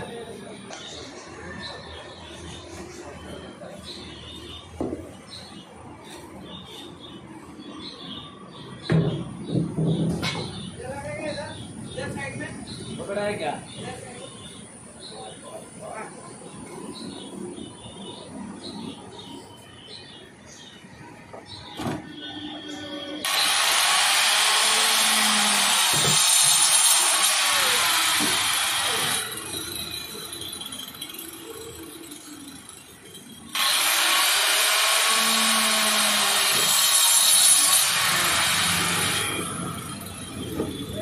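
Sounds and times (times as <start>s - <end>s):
electric cutter slicing plastic: 23.2s - 29.5s, 33.5s - 39.9s.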